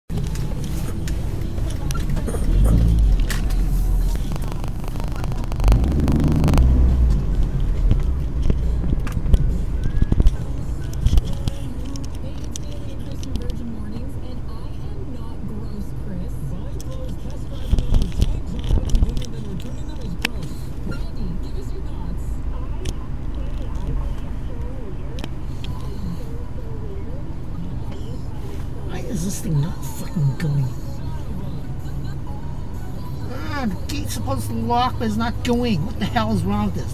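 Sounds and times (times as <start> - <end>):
car cabin rumble: 0.1 - 32.4.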